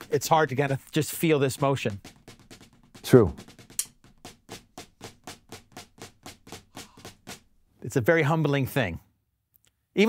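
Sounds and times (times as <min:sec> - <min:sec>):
drumsticks on practice pad: 0:00.0 - 0:07.5.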